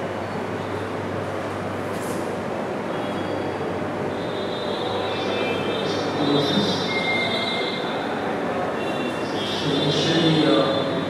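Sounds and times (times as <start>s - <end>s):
steady noise: 0.0s - 11.0s.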